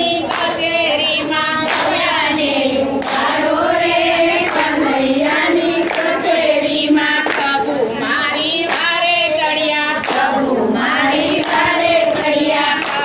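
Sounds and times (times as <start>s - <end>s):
women singing in unison: 0.0s - 13.0s
hand claps: 0.1s - 2.0s, 3.0s - 3.4s, 4.3s - 4.8s, 5.8s - 6.3s, 7.2s - 7.7s, 8.5s - 9.4s, 10.0s - 10.4s, 11.1s - 13.0s.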